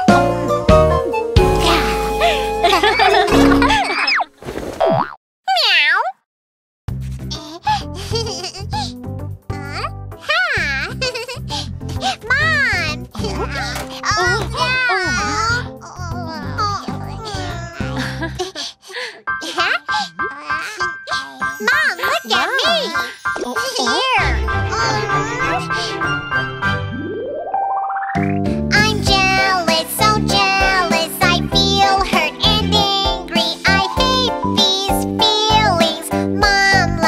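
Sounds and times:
high childlike character voice: 1.5 - 2.1, 5.5 - 6.2, 9.5 - 18.0, 19.5 - 26.1, 28.7 - 37.0
tinkling jingly music: 1.5 - 3.9, 21.2 - 26.8
cartoonish voiced call: 5.5 - 6.2.

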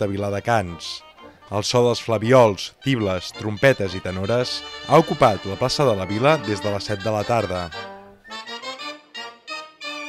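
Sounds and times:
reedy wind melody over brass: 0.4 - 10.0.

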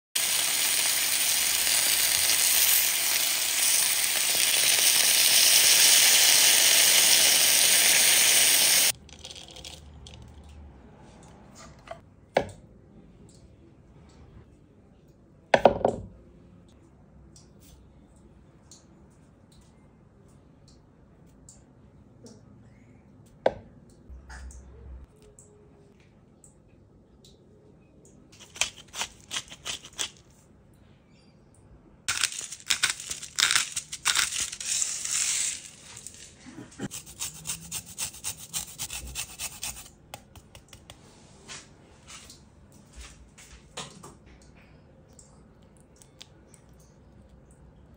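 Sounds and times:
spice grinder grinding: 0.2 - 10.2, 28.4 - 30.2, 32.1 - 40.2
lime scraped on zester grater: 32.1 - 40.0.

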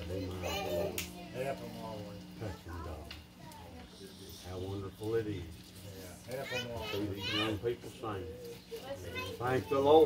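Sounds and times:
steady low hum: 0.0 - 9.0.

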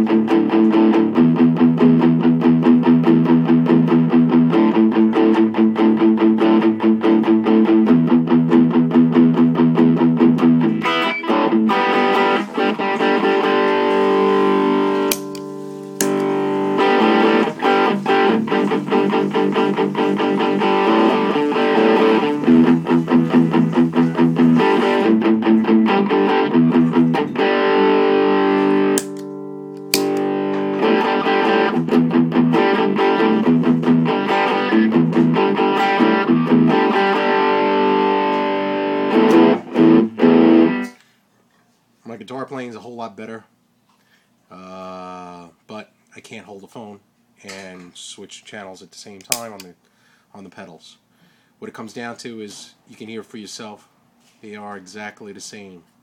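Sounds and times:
distorted electric guitar chords: 0.0 - 41.0.

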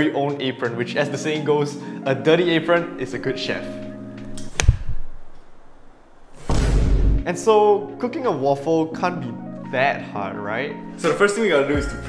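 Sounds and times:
background music: 0.0 - 5.7, 6.4 - 12.0
whoosh ending in low thump: 6.4 - 7.2.

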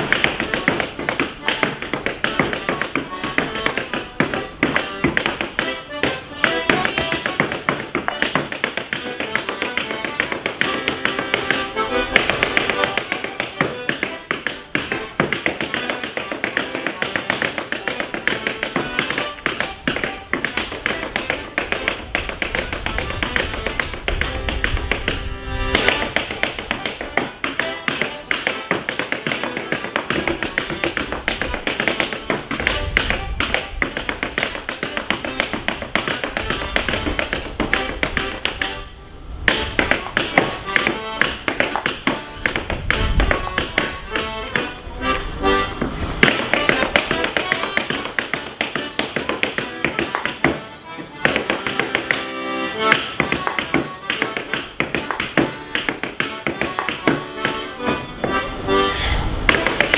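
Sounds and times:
clogs tapping on stage floor: 0.0 - 38.7, 39.4 - 44.7, 45.8 - 58.4
accordion playing: 0.0 - 59.9.

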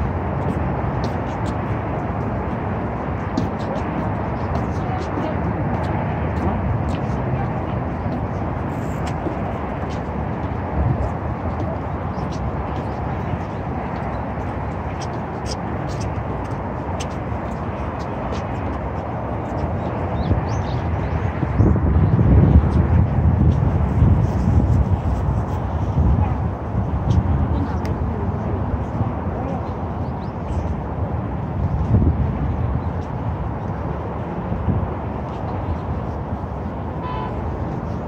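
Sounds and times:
distant city traffic: 0.0 - 38.0
wind on microphone: 0.0 - 38.0.

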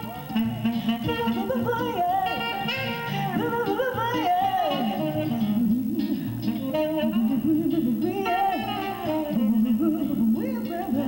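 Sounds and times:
acoustic guitar chords: 0.0 - 11.0
woman singing jazz: 0.0 - 11.0.

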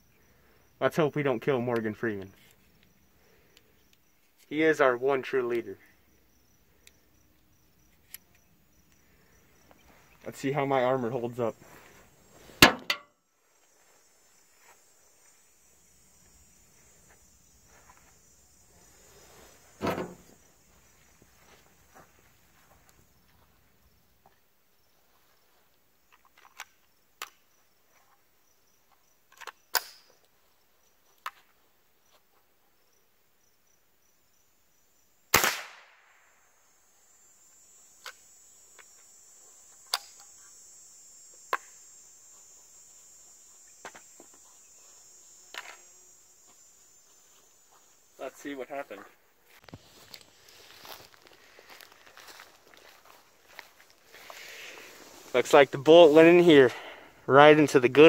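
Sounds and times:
high insect buzz: 0.0 - 58.0
rifle shot: 35.3 - 36.2.

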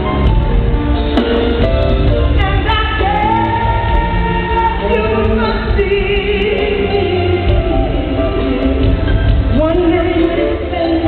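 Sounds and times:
band playing: 0.0 - 11.0
woman singing a soul ballad: 2.2 - 11.0.

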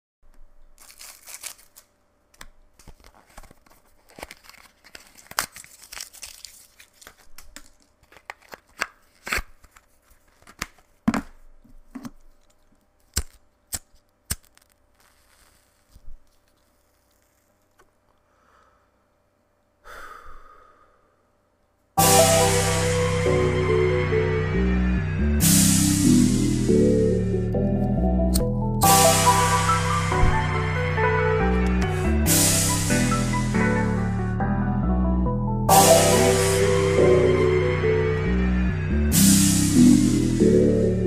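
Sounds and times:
wrapper crinkling and tearing: 0.6 - 17.8.

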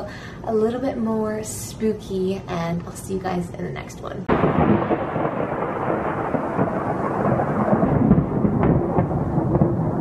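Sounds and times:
rolling thunder: 4.3 - 10.0
thunder cracks: 4.3 - 10.0.

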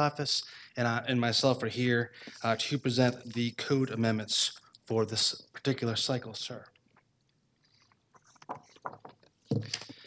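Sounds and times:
clicks and taps on microphone: 6.6 - 10.0.

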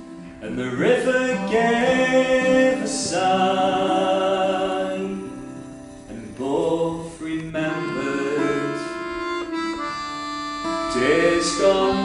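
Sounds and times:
accordion chords: 0.0 - 12.0
strummed acoustic guitar: 0.0 - 12.0.

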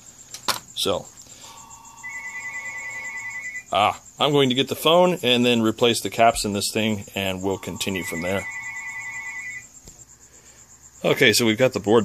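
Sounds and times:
faint high-pitched pulsing tone: 1.4 - 3.7, 7.0 - 9.8
telephone ringing: 1.6 - 3.7, 7.3 - 9.7.

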